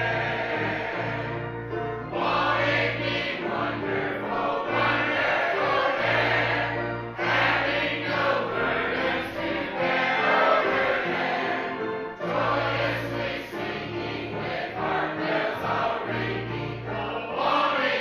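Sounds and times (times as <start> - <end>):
choir singing a hymn: 0.0 - 18.0.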